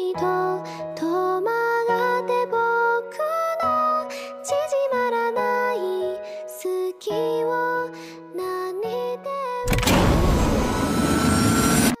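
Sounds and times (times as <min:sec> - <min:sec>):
loud vehicle engine: 0:09.7 - 0:12.0
faint rising whine: 0:09.9 - 0:12.0.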